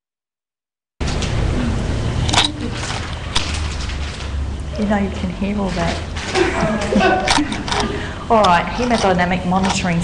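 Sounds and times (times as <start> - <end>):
person speaking: 4.7 - 10.0.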